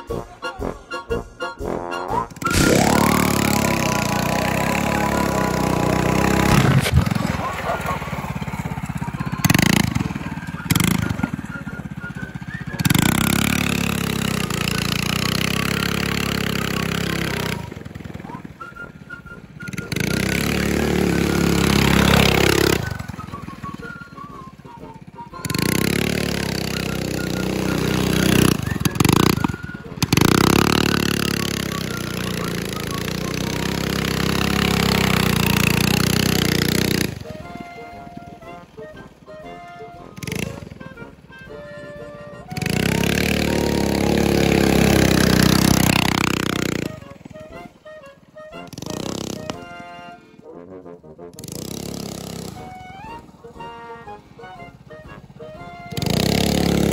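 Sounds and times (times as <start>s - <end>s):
small engine revving and idling: 2.2s - 50.2s, 51.3s - 56.9s.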